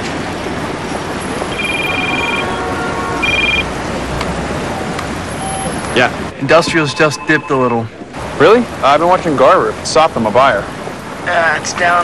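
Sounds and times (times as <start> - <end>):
city street traffic: 0.0 - 12.0
two-tone electronic beeps: 1.3 - 3.7, 5.4 - 5.9, 6.5 - 8.0.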